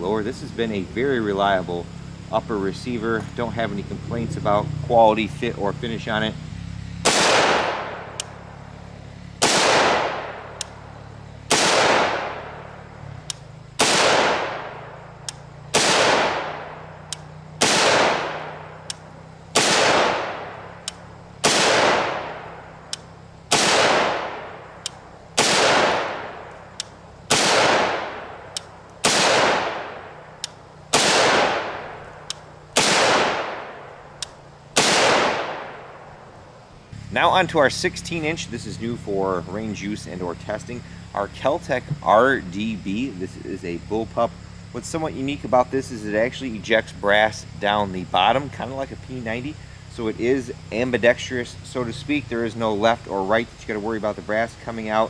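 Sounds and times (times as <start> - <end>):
rifle shots with echo: 7.0 - 8.2, 9.4 - 10.6, 11.5 - 12.7, 13.8 - 15.0, 15.7 - 16.9, 17.6 - 18.8, 19.5 - 20.8, 21.4 - 22.8, 23.5 - 26.5, 27.3 - 34.1, 34.8 - 36.2.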